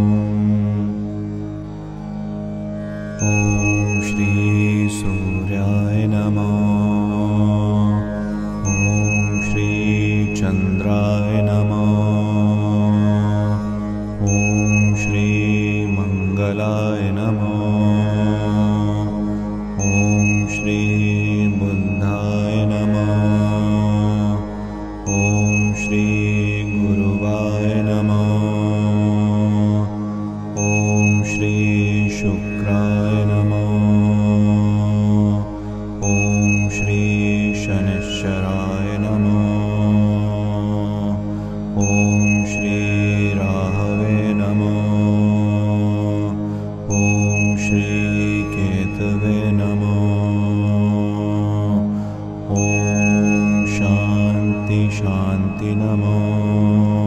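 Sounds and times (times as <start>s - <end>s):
steady low drone: 0.0s - 57.0s
high ringing tone: 3.2s - 6.0s, 8.6s - 12.8s, 14.2s - 17.1s, 19.8s - 23.8s, 25.1s - 28.6s, 30.6s - 34.0s, 36.0s - 40.5s, 41.8s - 45.5s, 46.9s - 50.7s, 52.5s - 57.0s
mantra chanting: 3.2s - 57.0s.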